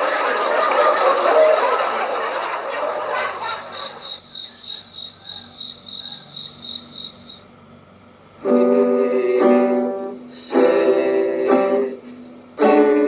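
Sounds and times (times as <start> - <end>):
crickets chirping: 2.3 - 8.4
acoustic guitar chord strummed: 8.4 - 13.0.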